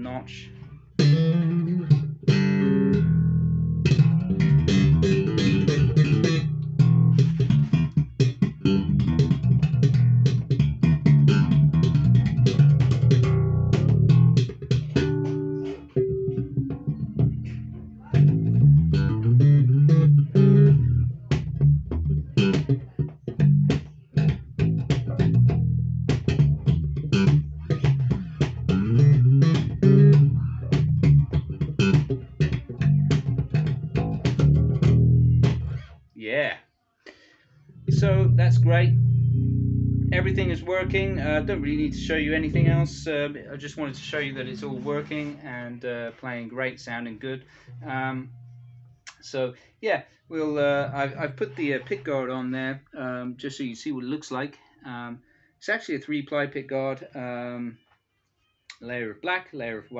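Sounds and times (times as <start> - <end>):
plucked electric bass lines: 0.0 - 36.0, 37.8 - 45.5, 47.6 - 49.3, 50.5 - 52.0.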